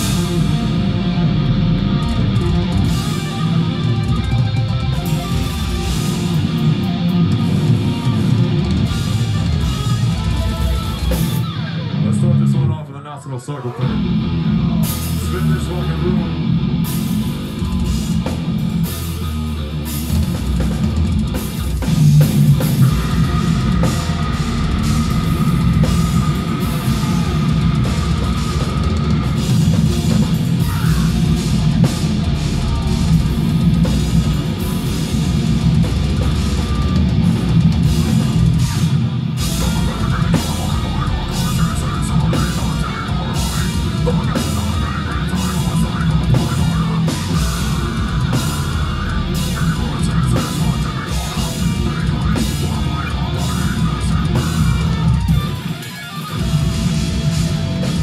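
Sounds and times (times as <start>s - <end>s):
drum kit: 0.0s - 12.6s, 13.8s - 58.0s
distorted electric guitars: 0.0s - 58.0s.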